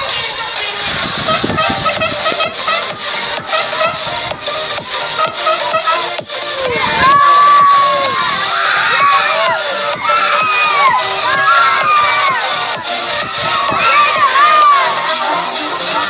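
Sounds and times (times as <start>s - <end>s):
children shouting and cheering: 0.0s - 16.0s.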